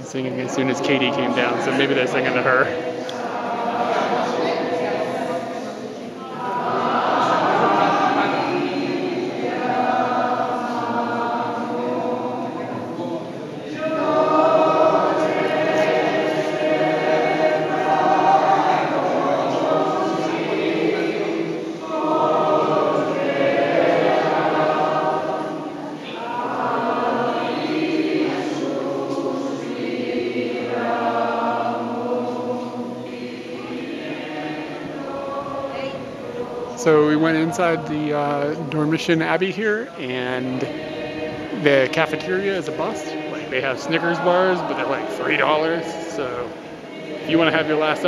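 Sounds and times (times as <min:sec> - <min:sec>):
choir singing sacred song: 0:00.0 - 0:48.0.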